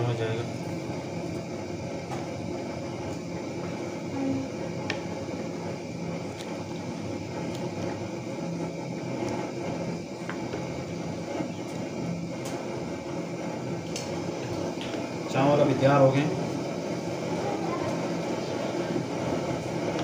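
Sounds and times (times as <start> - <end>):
pot of water boiling: 0.0 - 20.0.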